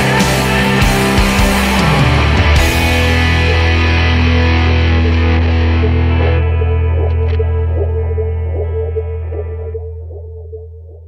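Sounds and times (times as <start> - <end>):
distorted electric guitar chord ringing: 0.0 - 9.3
steady low bass note: 0.0 - 11.0.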